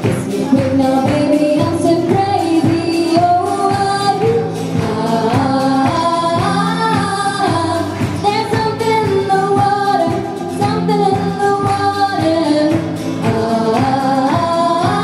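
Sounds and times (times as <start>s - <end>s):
cajon beat: 0.0s - 15.0s
strummed acoustic guitar: 0.0s - 15.0s
woman singing: 0.0s - 15.0s.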